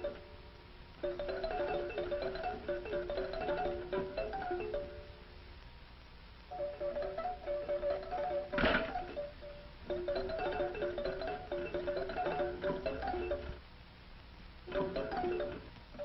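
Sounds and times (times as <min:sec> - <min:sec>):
music box melody: 0:00.0 - 0:00.4, 0:01.0 - 0:05.2, 0:06.5 - 0:13.6, 0:14.7 - 0:16.0.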